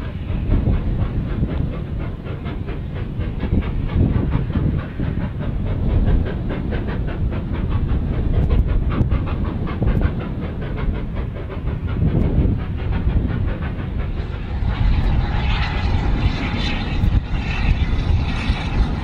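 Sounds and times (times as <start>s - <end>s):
heavy low rumble: 0.0s - 19.0s
steam locomotive chuffing: 0.0s - 19.0s.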